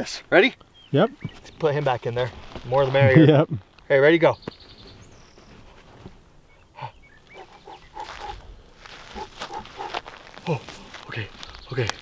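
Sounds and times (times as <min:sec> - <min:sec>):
faint scuffing of dry soil: 0:01.2 - 0:03.4, 0:04.4 - 0:06.3, 0:07.8 - 0:12.0.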